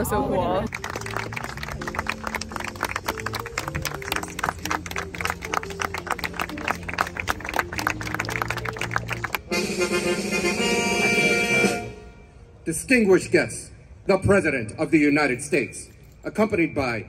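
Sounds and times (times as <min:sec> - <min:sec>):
crowd clapping: 0:00.7 - 0:09.4
bright music: 0:00.7 - 0:11.8
music with held low notes: 0:00.7 - 0:12.0.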